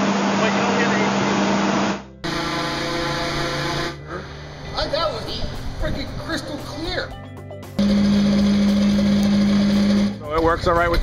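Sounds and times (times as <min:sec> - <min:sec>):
machine humming: 0:00.0 - 0:04.8, 0:07.8 - 0:10.2.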